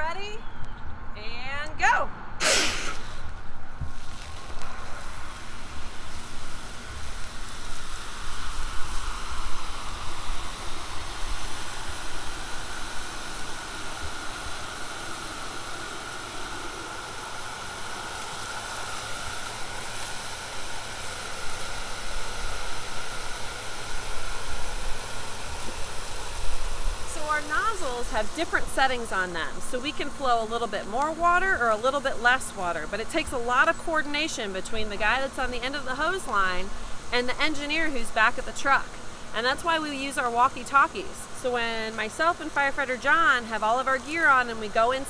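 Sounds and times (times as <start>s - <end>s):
short burst of noise: 2.4s - 5.4s
water jetting from hose nozzle: 2.4s - 45.0s.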